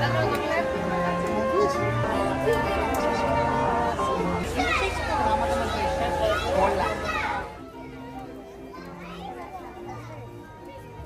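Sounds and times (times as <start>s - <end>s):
children's voices chattering: 0.0s - 11.0s
faint voices: 0.0s - 11.0s
music of held low notes: 0.0s - 11.0s.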